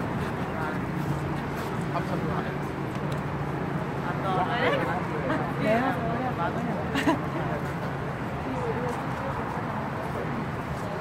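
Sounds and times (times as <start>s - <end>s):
faint voices of passers-by: 0.0s - 11.0s
road traffic hum: 0.0s - 11.0s.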